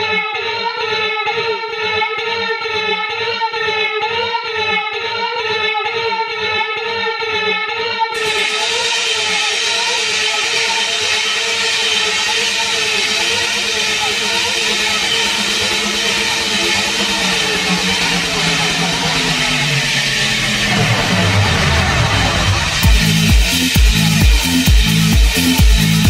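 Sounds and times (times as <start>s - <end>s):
techno bass: 8.1s - 26.0s
synthesized noise wash: 8.2s - 26.0s.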